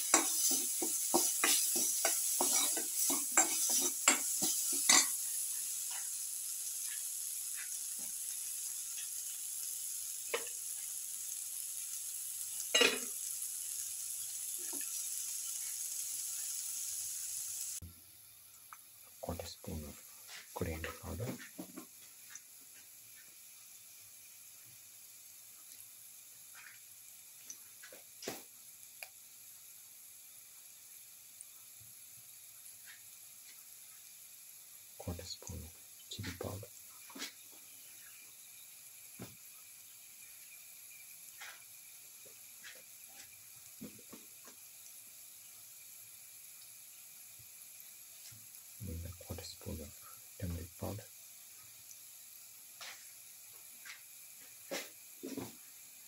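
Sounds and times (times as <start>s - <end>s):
oil sizzling in a pan: 0.0s - 56.0s.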